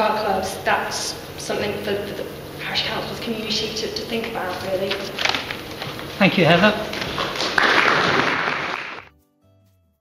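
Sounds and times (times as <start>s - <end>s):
audience applauding: 7.0s - 9.1s.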